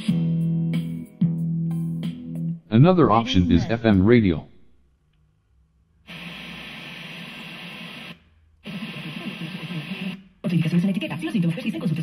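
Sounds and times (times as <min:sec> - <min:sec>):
hissy radio reception: 0:06.1 - 0:12.0.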